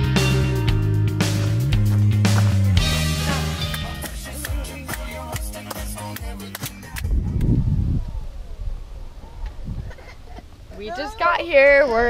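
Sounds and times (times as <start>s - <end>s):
outdoor ambience: 0.0s - 12.0s
low rumbling noise: 6.9s - 12.0s.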